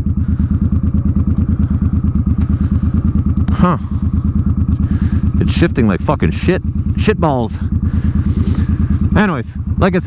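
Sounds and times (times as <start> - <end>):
motorcycle engine idling low: 0.0 - 10.0.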